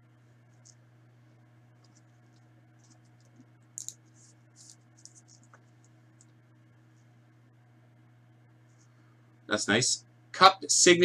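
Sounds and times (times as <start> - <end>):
low electrical hum: 0.0 - 11.0
card rustling against plastic sleeve: 1.8 - 6.3.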